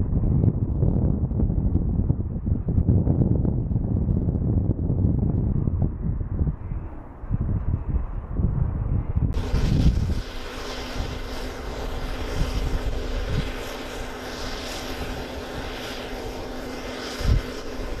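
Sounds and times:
hovercraft turbines and fans running: 0.0 - 18.0
steady low hum: 0.0 - 18.0
wind buffeting microphone: 0.0 - 18.0.

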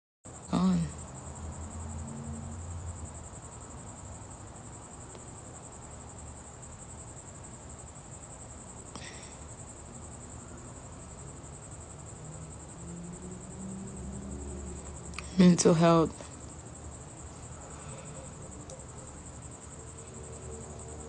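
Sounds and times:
crickets trilling: 0.3 - 21.0.

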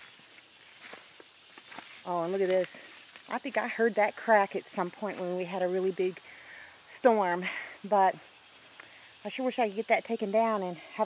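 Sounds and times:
footsteps on leaf litter: 0.0 - 3.8
faint steady high hiss: 0.0 - 11.0.

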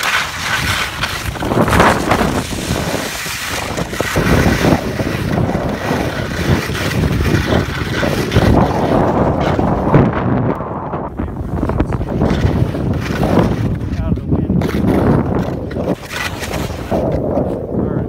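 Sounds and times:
skis sliding over snow: 0.0 - 17.6
wind rush on microphone: 0.0 - 18.0.

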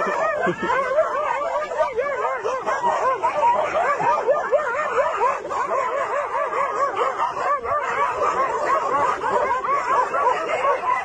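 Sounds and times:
dogs yapping: 0.0 - 11.0.

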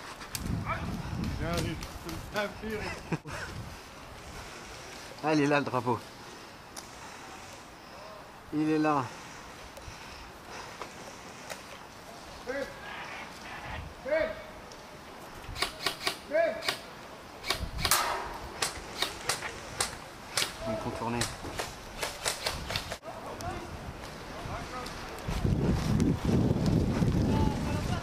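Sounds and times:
airsoft gun shots: 15.6 - 19.4.

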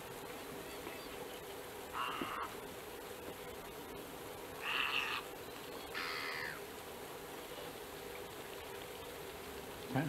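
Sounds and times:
bird harsh call: 1.9 - 2.6, 4.6 - 6.6.

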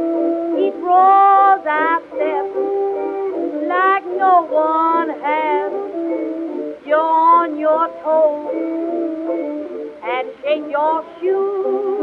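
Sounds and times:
old jazz dance-band record: 0.0 - 12.0.

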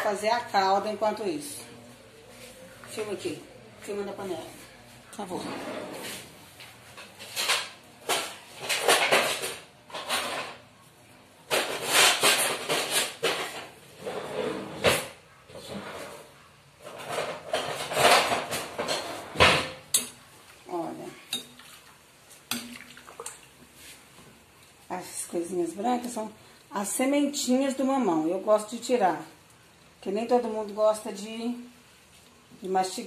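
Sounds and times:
spoon scraping and clattering in pot: 21.2 - 23.2.

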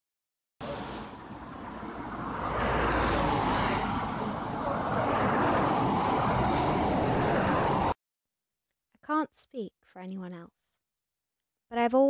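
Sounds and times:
road traffic passing: 0.6 - 8.0.

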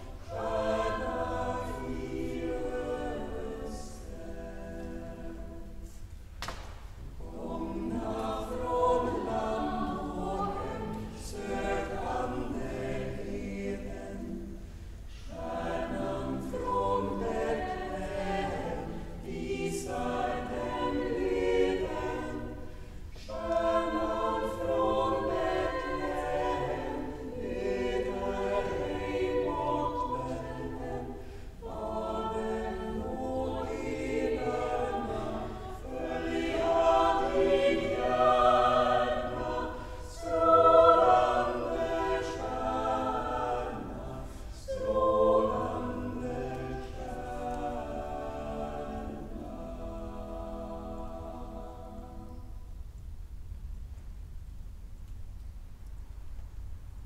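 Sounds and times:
girls' choir singing: 0.0 - 6.0, 7.0 - 52.5.

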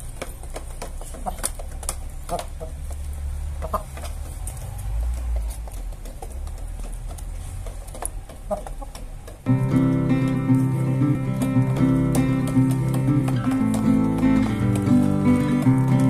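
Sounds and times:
beaks tapping plastic: 0.0 - 16.0
chickens clucking: 0.0 - 16.0.

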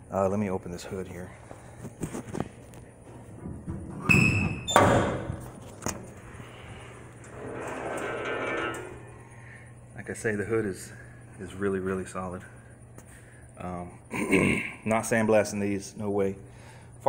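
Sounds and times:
hinges creaking: 3.2 - 9.4
hood latch squeak: 4.0 - 5.2
metal clunk: 7.2 - 9.2.

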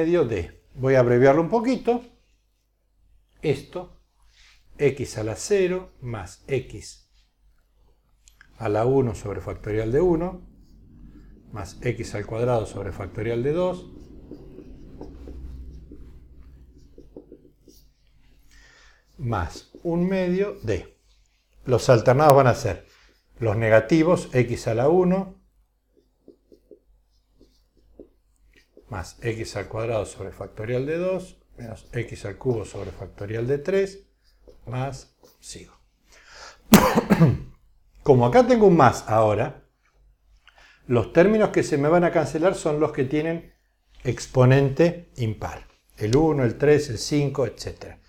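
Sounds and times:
marker scratching on whiteboard: 8.8 - 18.5, 25.9 - 29.4
man clearing his throat: 36.7 - 37.6.

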